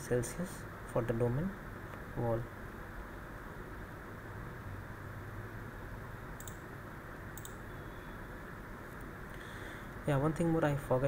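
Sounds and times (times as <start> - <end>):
room hum and hiss: 0.0 - 11.0
computer mouse clicks: 6.4 - 6.7, 7.4 - 7.6.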